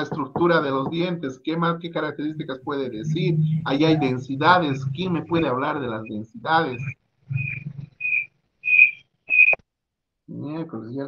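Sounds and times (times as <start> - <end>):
high-pitched whistle-like notes: 2.2 - 9.6.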